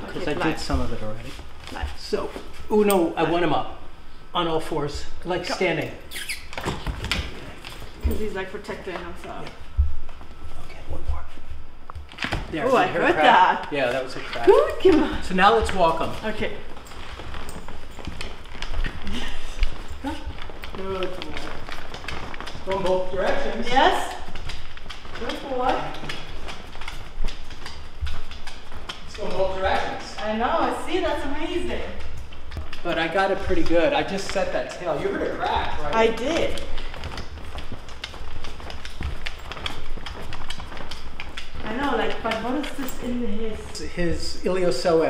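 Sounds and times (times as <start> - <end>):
people's footsteps: 0.0 - 3.1, 6.2 - 45.0
dog paws padding: 0.0 - 3.6, 5.8 - 45.0
dog claws clicking on wood floor: 13.8 - 43.3.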